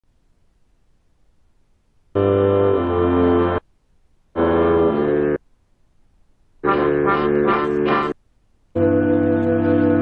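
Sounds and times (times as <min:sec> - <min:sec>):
sampled film music chord: 0:02.2 - 0:03.6, 0:04.4 - 0:05.4, 0:06.6 - 0:08.2, 0:08.8 - 0:10.0.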